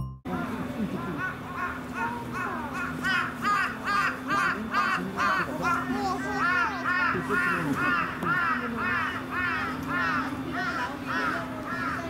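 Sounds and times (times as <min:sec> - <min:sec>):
crow cawing: 0:01.2 - 0:12.0.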